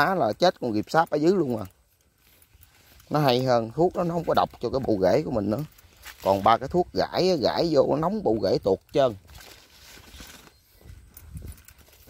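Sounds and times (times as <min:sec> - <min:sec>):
footsteps on dry mud: 0:00.0 - 0:12.0.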